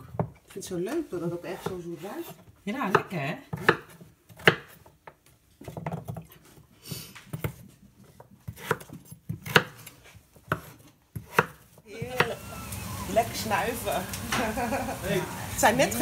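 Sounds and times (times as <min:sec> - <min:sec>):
knife chopping on wooden board: 0:01.5 - 0:06.3, 0:07.3 - 0:12.4.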